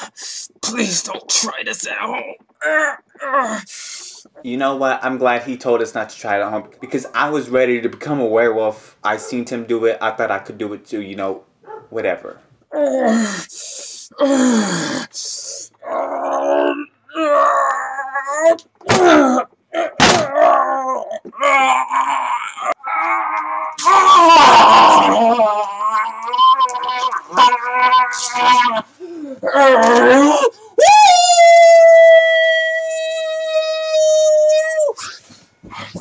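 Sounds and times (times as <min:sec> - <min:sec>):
man making werewolf noises: 0:12.7 - 0:36.0
man howling like a wolf: 0:20.4 - 0:28.8.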